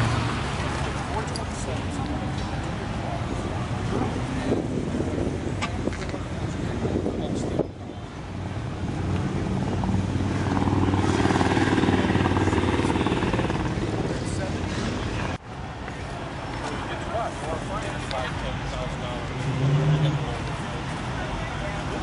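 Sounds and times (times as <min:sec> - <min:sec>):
people talking: 0:00.6 - 0:08.2, 0:11.6 - 0:22.0.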